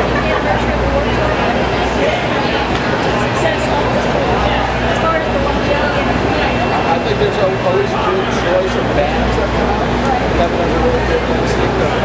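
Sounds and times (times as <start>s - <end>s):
loud steady background noise: 0.0s - 12.0s
man talking: 6.9s - 12.0s.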